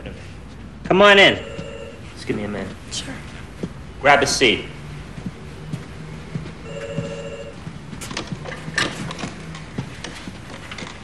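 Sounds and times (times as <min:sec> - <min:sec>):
telephone electronic trilling ring: 0:01.2 - 0:02.0, 0:06.7 - 0:07.6.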